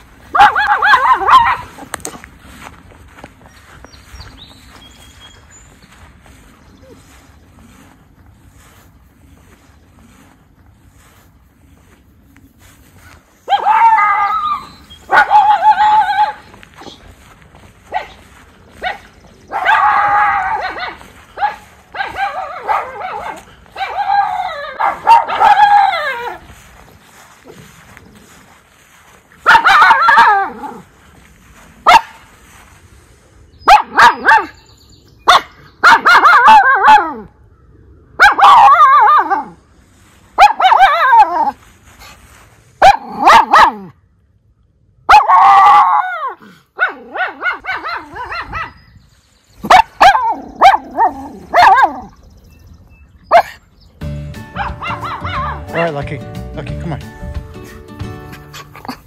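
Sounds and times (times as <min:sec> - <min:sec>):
dog barking: 0:00.3 - 0:01.9, 0:13.5 - 0:17.0, 0:17.9 - 0:18.2, 0:18.8 - 0:26.4, 0:29.4 - 0:30.8, 0:31.8 - 0:32.2, 0:33.6 - 0:34.6, 0:35.2 - 0:37.3, 0:38.2 - 0:39.6, 0:40.4 - 0:41.6, 0:42.8 - 0:44.0, 0:45.1 - 0:48.8, 0:49.6 - 0:52.1, 0:53.3 - 0:53.6, 0:54.6 - 0:55.6.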